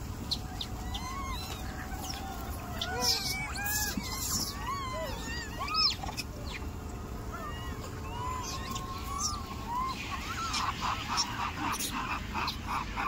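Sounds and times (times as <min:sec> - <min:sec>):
macaques squeaking and cooing: 0:00.0 - 0:13.0
sharp monkey call: 0:00.3 - 0:06.7, 0:07.3 - 0:13.0.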